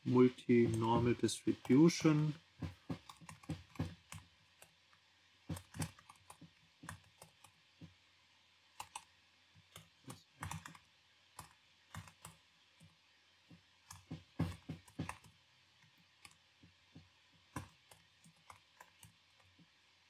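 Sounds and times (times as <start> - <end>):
computer keyboard typing: 0.5 - 4.8, 5.5 - 7.6, 8.7 - 9.1, 9.7 - 12.9, 13.9 - 16.4, 17.5 - 19.6.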